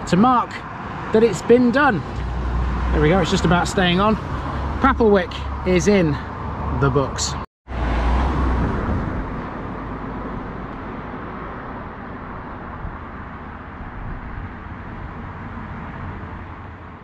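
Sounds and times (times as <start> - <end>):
vehicle passing: 0.0 - 17.0.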